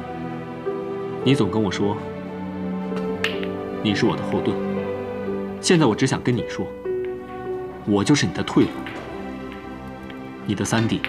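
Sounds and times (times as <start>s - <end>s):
soft sustained background music: 0.0s - 11.0s
man speaking: 1.2s - 2.0s, 3.8s - 4.7s, 5.6s - 6.8s, 7.8s - 8.8s, 10.5s - 11.0s.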